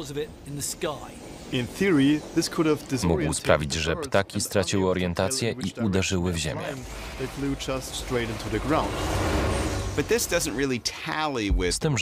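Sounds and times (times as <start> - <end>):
person speaking: 2.8 - 7.5.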